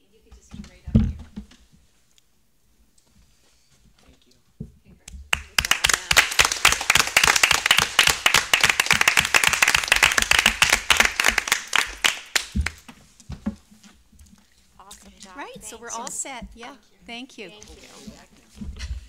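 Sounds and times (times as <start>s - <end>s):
people applauding: 5.3s - 12.9s.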